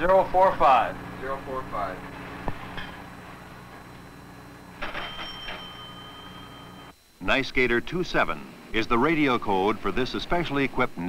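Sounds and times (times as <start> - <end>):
low steady hum: 0.0 - 11.0
telegraph rattling clacks: 4.8 - 5.9
bell ringing: 4.8 - 6.9.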